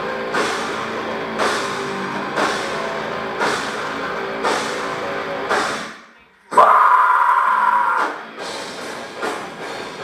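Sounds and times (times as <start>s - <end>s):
metal band playing: 0.0s - 10.0s
metal vocalist screaming: 6.5s - 8.2s.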